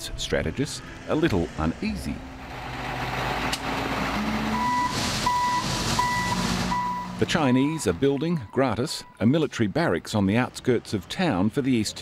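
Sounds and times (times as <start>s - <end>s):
diesel engine running: 0.0s - 8.5s
reversing alarm beeping: 4.5s - 9.2s.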